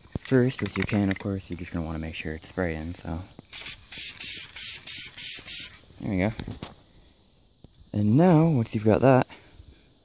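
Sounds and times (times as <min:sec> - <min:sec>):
aerosol spray can hissing in bursts: 0:03.5 - 0:05.8.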